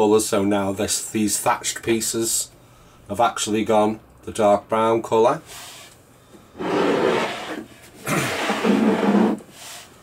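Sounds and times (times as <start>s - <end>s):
plastic toy scraping across table: 6.6s - 9.9s.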